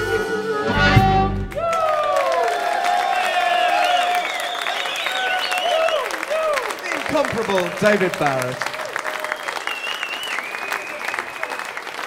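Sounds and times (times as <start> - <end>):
blues band with harmonicas: 0.0 - 1.6
audience applause: 1.5 - 12.0
cheering and whistles: 1.5 - 12.0.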